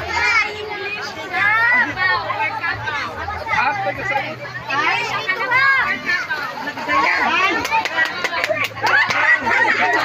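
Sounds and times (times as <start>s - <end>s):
children shouting in play: 0.0s - 3.7s.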